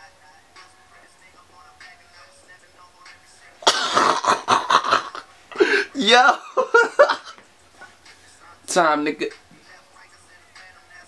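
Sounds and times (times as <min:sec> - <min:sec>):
faint background music: 0:00.0 - 0:11.0
man laughing loudly: 0:03.6 - 0:07.4.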